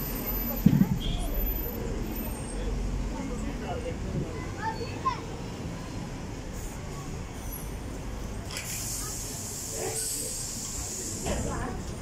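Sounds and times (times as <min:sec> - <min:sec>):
bus engine rumbling: 0:00.0 - 0:12.0
street traffic noise: 0:00.0 - 0:12.0.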